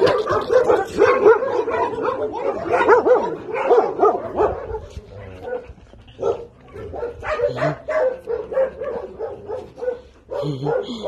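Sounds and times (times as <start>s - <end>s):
dogs giving high-pitched calls: 0.0s - 11.0s.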